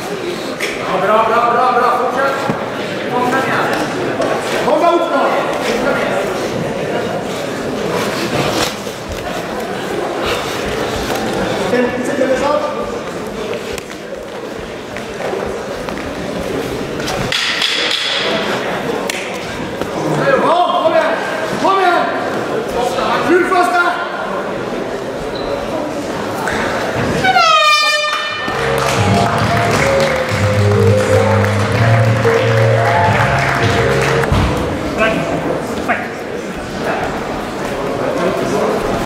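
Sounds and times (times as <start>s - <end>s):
crowd noise: 0.0s - 39.0s
crowd shouting: 28.4s - 34.4s.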